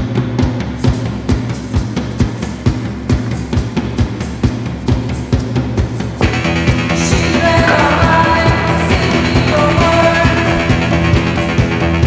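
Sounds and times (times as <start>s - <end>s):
drum-kit beat: 0.0s - 12.0s
steady bass line: 0.0s - 12.0s.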